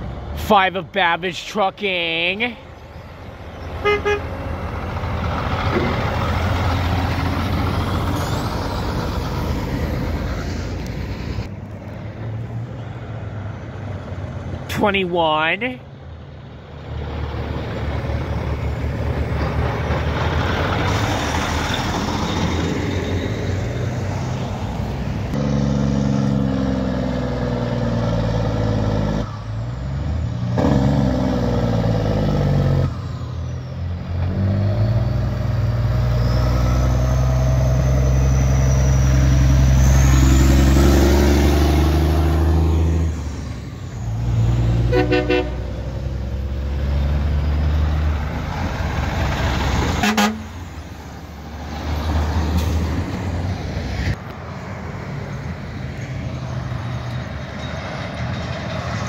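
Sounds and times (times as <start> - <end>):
truck diesel engine pulling past: 1.3 - 14.7, 15.9 - 59.0
short horn toot: 3.8 - 4.3, 44.9 - 45.6, 50.0 - 50.5
car passing: 34.1 - 59.0.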